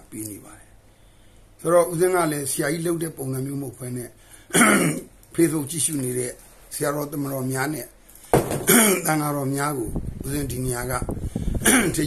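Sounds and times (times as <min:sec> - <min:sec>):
man speaking: 0:01.6 - 0:08.0, 0:08.8 - 0:11.1
man clearing his throat: 0:04.5 - 0:05.1, 0:08.6 - 0:09.1, 0:11.6 - 0:12.0.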